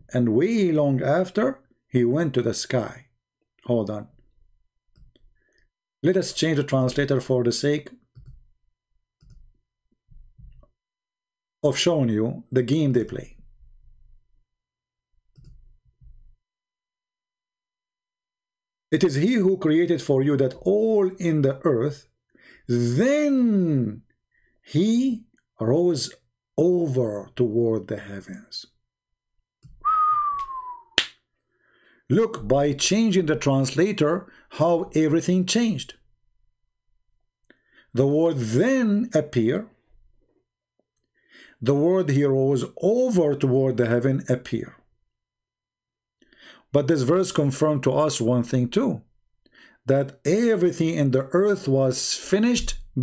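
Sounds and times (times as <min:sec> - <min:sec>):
computer mouse clicking: 0:09.2 - 0:09.5, 0:15.3 - 0:16.2
whistle-like tone gliding down: 0:29.8 - 0:31.0.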